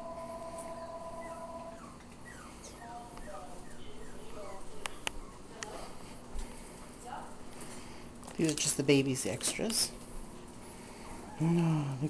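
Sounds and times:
small dog whining: 0:00.0 - 0:05.5.

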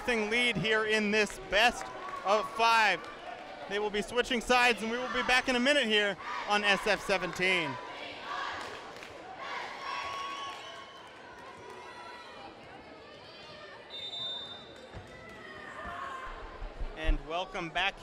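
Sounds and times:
crowd chatter echoing in hall: 0:00.0 - 0:10.3, 0:11.0 - 0:14.0
referee's whistle: 0:13.9 - 0:14.8.

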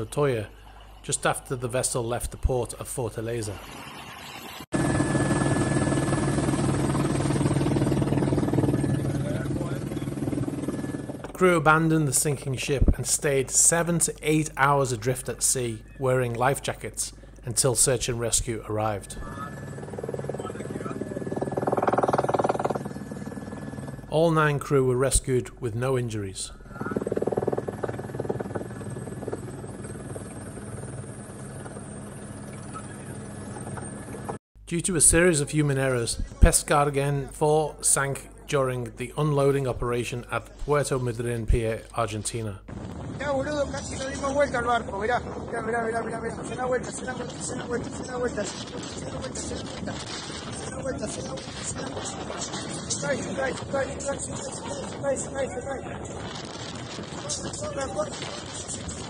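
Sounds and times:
thin steady whine: 0:00.0 - 0:34.4
helicopter engine and rotor drone: 0:03.5 - 0:34.4, 0:42.6 - 0:59.0.

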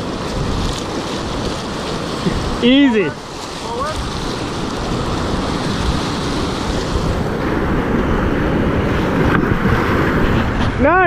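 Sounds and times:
whitewater rushing: 0:00.0 - 0:11.0
wind noise on microphone: 0:00.0 - 0:11.0.

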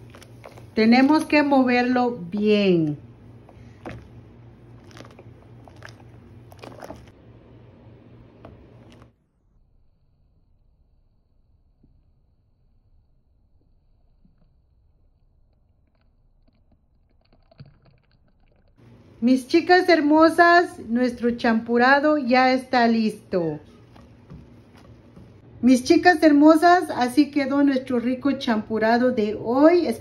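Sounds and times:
steady low hum: 0:00.0 - 0:16.6, 0:18.8 - 0:29.9
thick liquid bubbles popping: 0:03.0 - 0:07.2, 0:16.6 - 0:18.8.

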